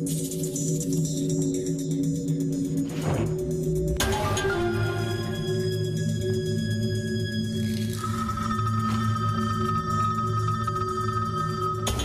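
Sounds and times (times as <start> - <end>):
music with long held tones: 0.0 - 12.0.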